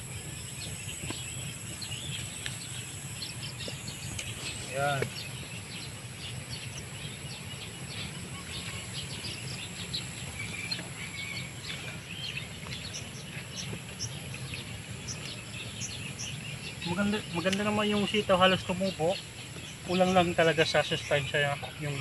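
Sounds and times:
bird chirps and calls: 0:00.0 - 0:22.0
high insect drone: 0:00.0 - 0:22.0.

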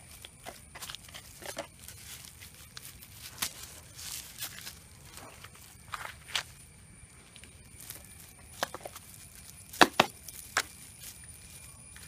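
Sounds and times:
flip-flop footsteps on damp ground: 0:00.0 - 0:12.0.

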